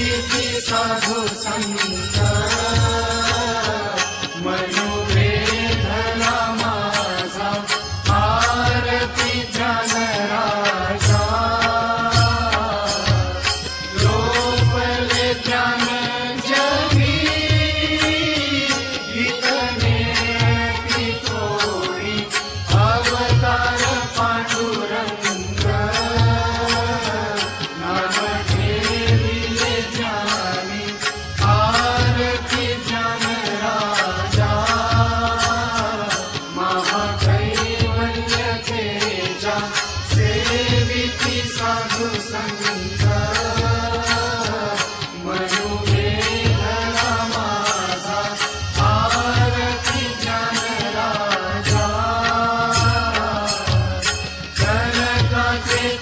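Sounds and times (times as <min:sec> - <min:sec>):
voices singing a hymn: 0:00.0 - 0:56.0.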